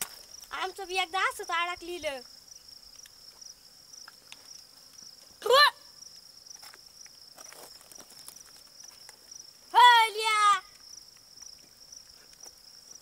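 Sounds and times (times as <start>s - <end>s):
insects chirring: 0.0s - 13.0s.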